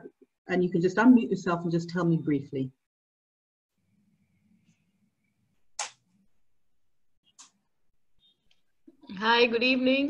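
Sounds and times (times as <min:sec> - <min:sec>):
sharp click: 0:05.8 - 0:06.0.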